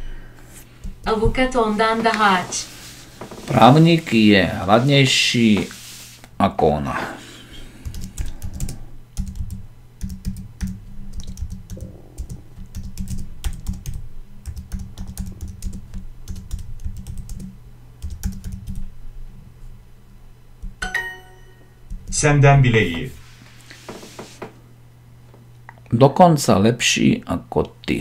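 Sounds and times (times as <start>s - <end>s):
keyboard typing: 7.8s - 18.8s.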